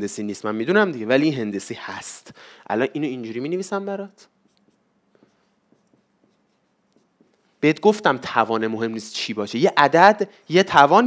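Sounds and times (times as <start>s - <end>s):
marker writing on whiteboard: 4.2s - 7.6s.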